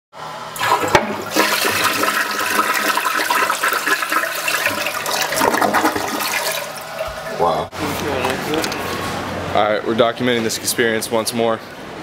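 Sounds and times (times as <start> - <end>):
toilet flush click: 0.6 - 6.7
water rushing down toilet bowl: 0.6 - 7.5.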